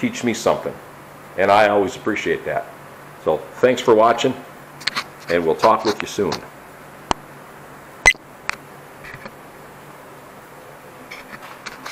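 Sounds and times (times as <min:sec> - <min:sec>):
faint background hum: 0:00.0 - 0:11.9.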